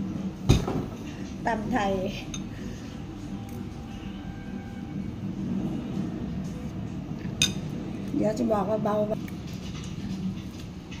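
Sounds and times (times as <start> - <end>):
cutlery clinking on ceramic bowl: 7.4 - 7.7.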